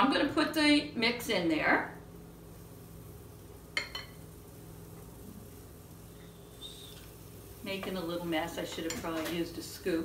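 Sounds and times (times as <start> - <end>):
low steady hum: 0.0 - 10.0
metal spoon clinking on dishes: 3.8 - 4.2.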